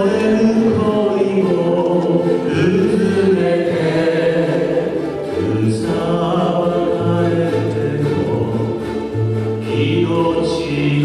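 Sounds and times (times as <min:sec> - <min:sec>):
man singing: 0:00.0 - 0:09.0, 0:09.6 - 0:11.0
ukulele ensemble playing: 0:00.0 - 0:11.0.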